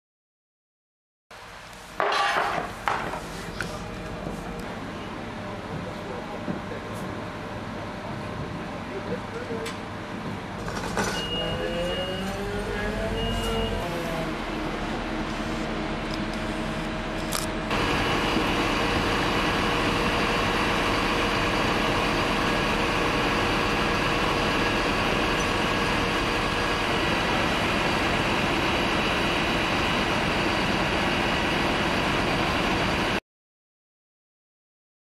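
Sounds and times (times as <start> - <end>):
diesel truck engine running: 3.3 - 33.2.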